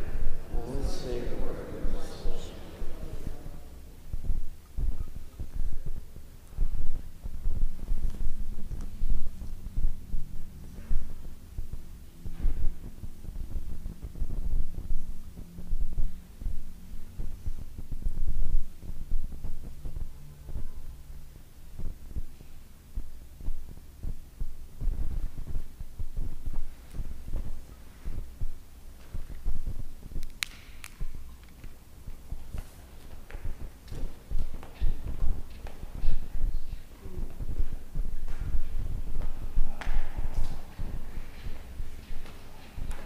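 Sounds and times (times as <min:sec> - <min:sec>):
steady hum: 0:00.0 - 0:43.0
low irregular thumping: 0:01.4 - 0:43.0.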